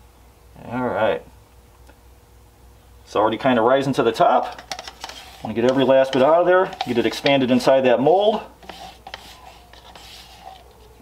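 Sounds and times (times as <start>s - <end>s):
stir stick scraping plastic cup: 4.3s - 11.0s.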